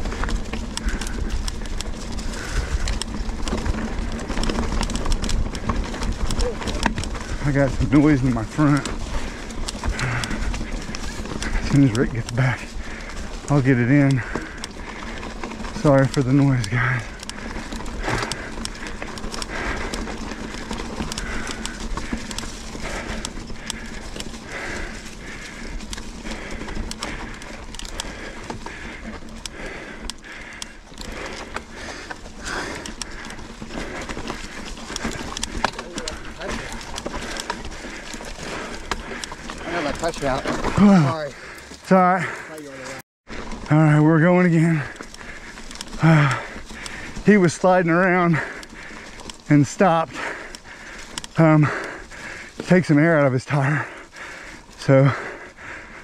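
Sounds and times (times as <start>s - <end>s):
mountain bike rolling on dirt: 0.0s - 56.0s
repeating bike rattle: 0.0s - 56.0s.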